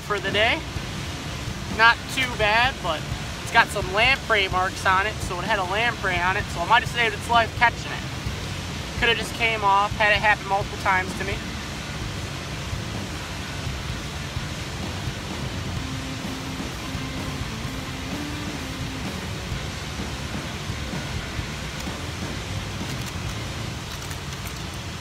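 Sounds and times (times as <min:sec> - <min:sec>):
river flowing over rocks: 0:00.0 - 0:25.0.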